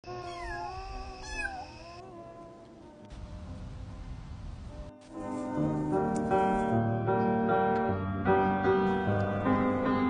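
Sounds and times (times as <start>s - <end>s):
kitten meowing: 0.1s - 2.0s.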